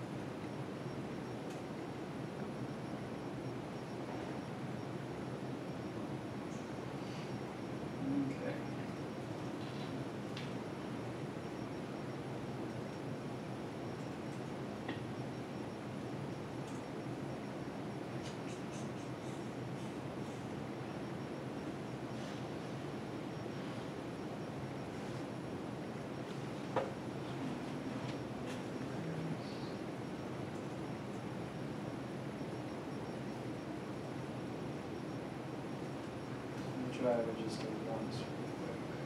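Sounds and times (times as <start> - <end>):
room noise: 0.0 - 39.0.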